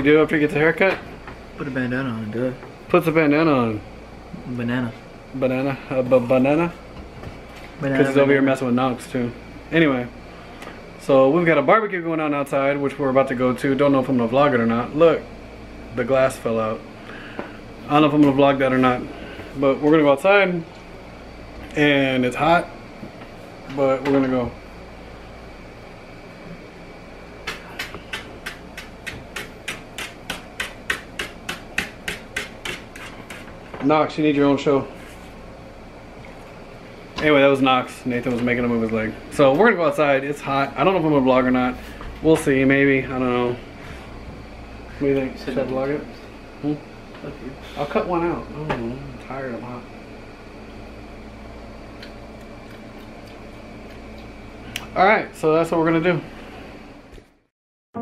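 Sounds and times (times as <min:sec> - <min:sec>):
low hum with faint hiss: 0:00.0 - 0:58.0.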